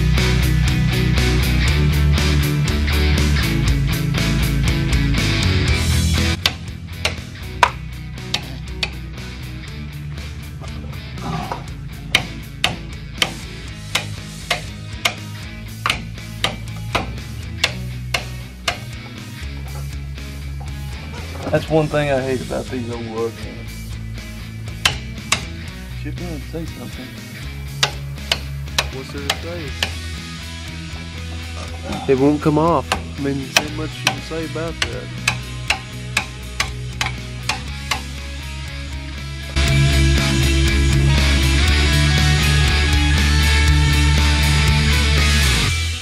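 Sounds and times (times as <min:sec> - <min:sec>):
rock music: 0:00.0 - 0:46.0
hammer striking steel wheel: 0:06.4 - 0:09.0, 0:12.1 - 0:19.2, 0:24.8 - 0:25.6, 0:27.8 - 0:30.0, 0:32.8 - 0:38.2.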